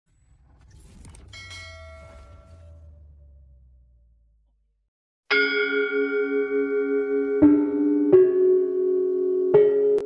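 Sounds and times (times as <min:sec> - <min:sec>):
bright bell chime ringing: 0:01.3 - 0:02.9, 0:05.3 - 0:07.5.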